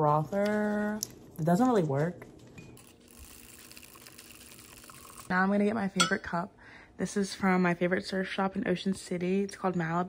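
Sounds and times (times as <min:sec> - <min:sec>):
milk frother whirring: 0:02.8 - 0:05.4.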